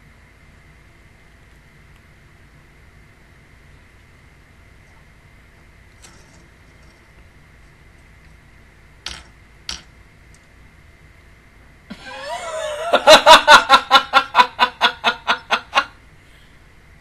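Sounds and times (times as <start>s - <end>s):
woman stifling laughter: 11.9s - 16.0s.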